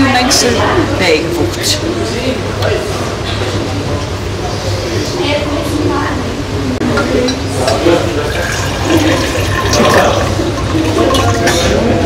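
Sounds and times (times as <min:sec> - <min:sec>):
steady background rush and hum: 0:00.0 - 0:12.0
liquid pouring into glass tube: 0:08.1 - 0:11.9.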